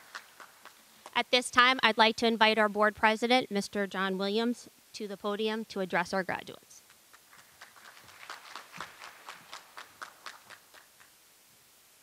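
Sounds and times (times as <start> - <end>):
sparse applause: 0.0 - 0.9, 7.1 - 11.2.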